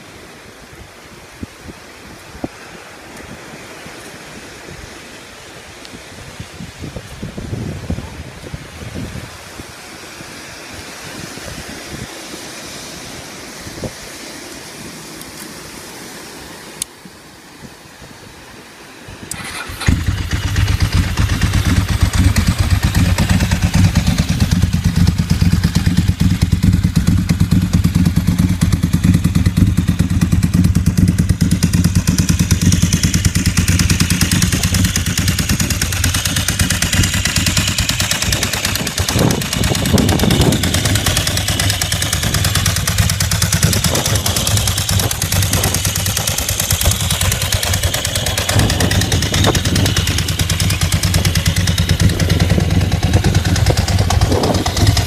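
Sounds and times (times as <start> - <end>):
motorcycle engine idling: 19.3 - 55.0.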